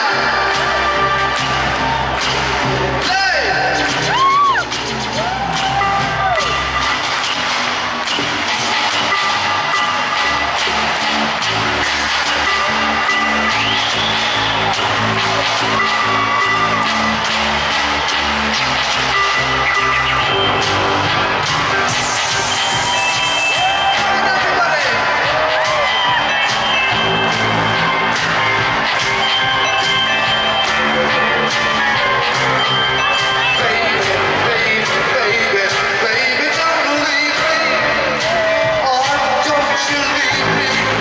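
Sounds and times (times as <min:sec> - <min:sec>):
crowd cheering and whooping: 0:00.0 - 0:41.0
synth-pop band playing: 0:00.0 - 0:41.0
lead vocal singing: 0:33.2 - 0:41.0.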